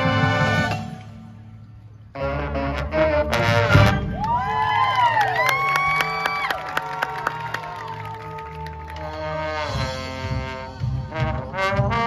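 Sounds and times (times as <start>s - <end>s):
marching band brass hit: 2.2s - 4.6s, 9.1s - 12.0s
people whooping and cheering: 4.0s - 9.4s.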